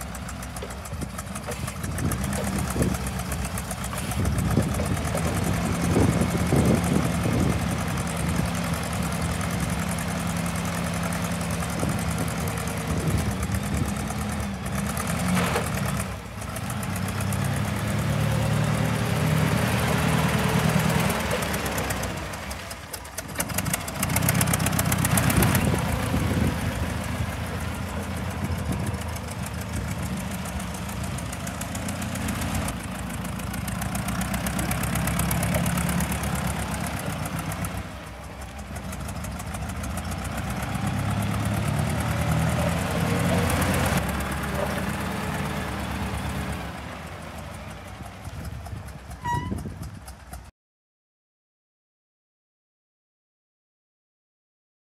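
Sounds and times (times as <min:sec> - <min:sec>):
forklift engine running: 0:00.0 - 0:50.5.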